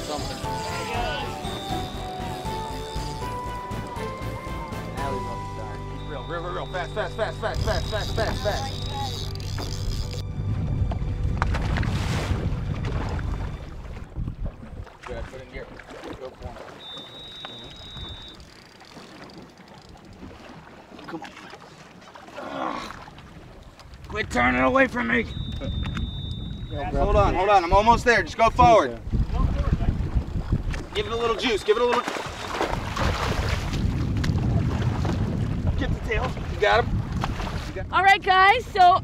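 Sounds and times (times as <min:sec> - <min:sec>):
boat engine rumbling: 0:00.0 - 0:39.0
rushing water: 0:00.0 - 0:39.0
wind buffeting microphone: 0:23.2 - 0:39.0.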